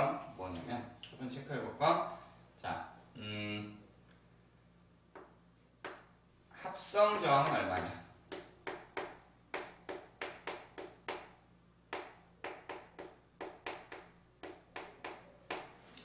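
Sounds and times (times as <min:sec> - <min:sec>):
chalk tapping on blackboard: 0:05.1 - 0:06.1, 0:06.8 - 0:15.8.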